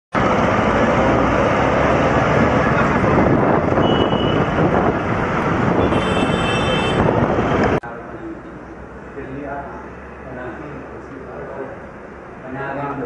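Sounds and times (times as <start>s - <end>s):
road traffic rushing: 0.1s - 13.0s.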